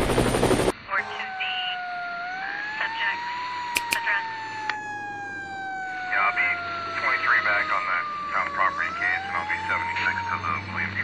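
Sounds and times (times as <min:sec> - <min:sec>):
siren wailing: 0:00.0 - 0:11.0.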